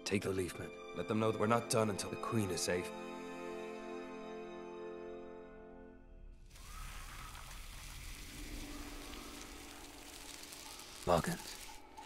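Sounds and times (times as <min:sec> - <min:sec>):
soft steady hiss: 0:06.5 - 0:12.0.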